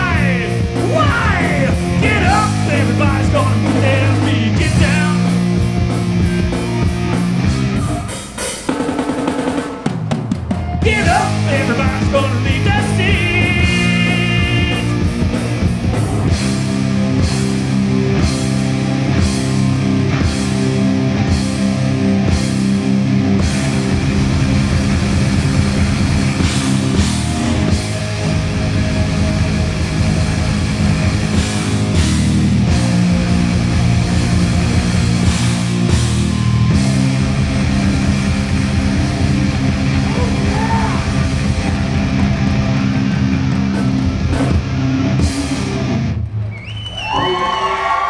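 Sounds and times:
rock band final chord: 0:00.0 - 0:07.9, 0:10.8 - 0:46.2
distorted electric guitar riff: 0:00.0 - 0:08.4, 0:10.8 - 0:46.5
bass guitar: 0:00.0 - 0:08.6, 0:10.4 - 0:47.3
faint crowd cheering: 0:09.8 - 0:15.1, 0:39.8 - 0:44.0, 0:46.2 - 0:48.0.

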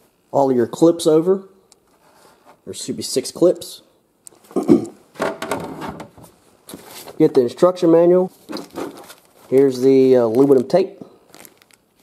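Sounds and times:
plastic packaging rustling: 0:08.3 - 0:12.0.

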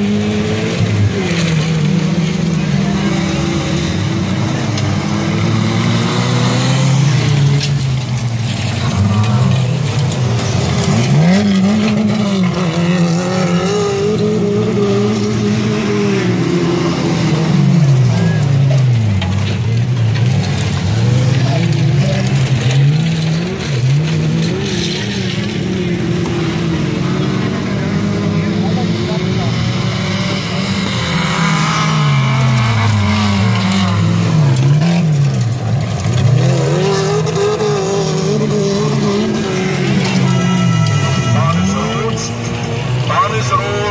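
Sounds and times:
stock car engines racing: 0:00.0 - 0:43.9.

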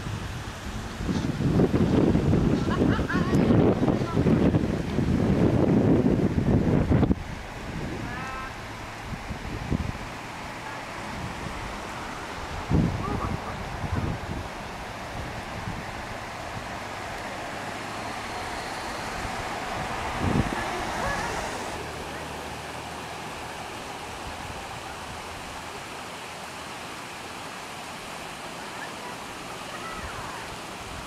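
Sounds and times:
low rumbling wind on microphone: 0:00.0 - 0:26.0
steady background hiss: 0:06.1 - 0:31.0.

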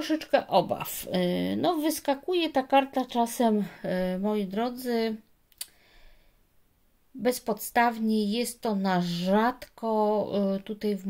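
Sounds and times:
woman's voice: 0:00.0 - 0:05.3, 0:07.2 - 0:11.0
faint breath: 0:05.7 - 0:06.5.

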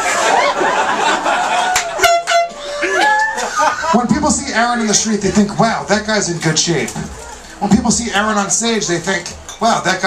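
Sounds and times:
voices: 0:00.0 - 0:10.0
air horn blast: 0:02.0 - 0:02.7.

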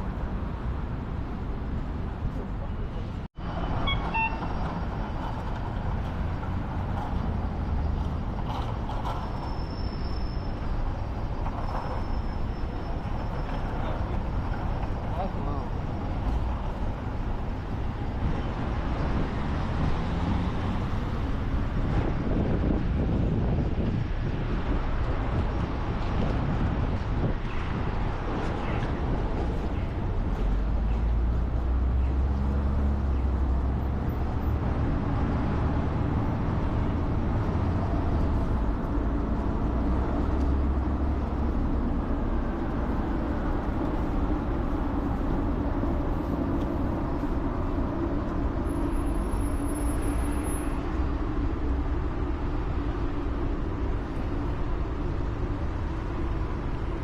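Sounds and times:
road noise: 0:00.0 - 0:57.0.

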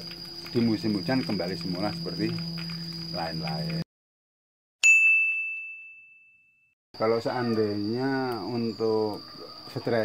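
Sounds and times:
bell-like ding: 0:04.8 - 0:06.8.

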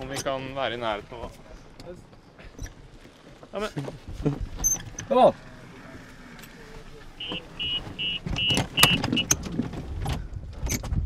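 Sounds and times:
short high warning beeps: 0:07.2 - 0:09.3
cart knocks and rattles: 0:07.2 - 0:11.0.

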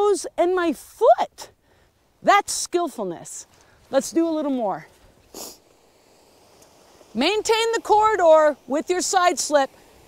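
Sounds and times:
short sniff: 0:05.2 - 0:05.8.

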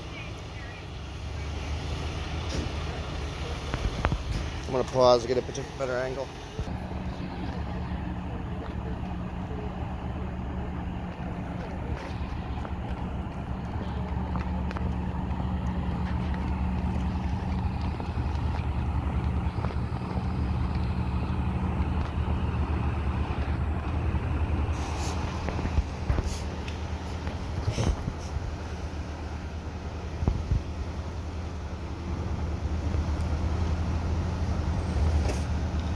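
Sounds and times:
diesel engine idling: 0:00.0 - 0:35.9
voices in background: 0:02.7 - 0:16.8.

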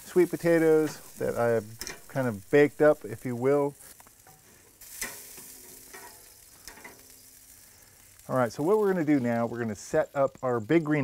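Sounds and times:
food sizzling on a grill: 0:00.0 - 0:11.0
metal tongs clicking: 0:01.8 - 0:02.1.

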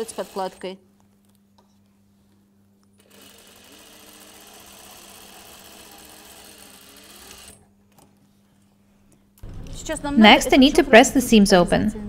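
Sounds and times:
sewing machine stitching: 0:00.0 - 0:00.7, 0:03.0 - 0:08.0.

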